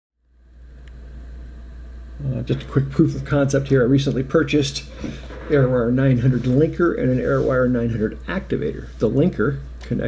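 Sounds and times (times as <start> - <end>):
low electrical hum: 0.2 - 10.0
faint background hiss: 0.3 - 10.0.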